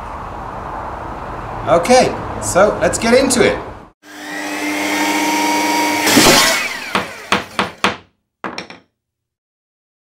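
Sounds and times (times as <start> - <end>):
power saw whining: 4.0 - 7.8
saw rasping as it cuts: 4.0 - 7.8
sharp knocks: 6.1 - 8.9.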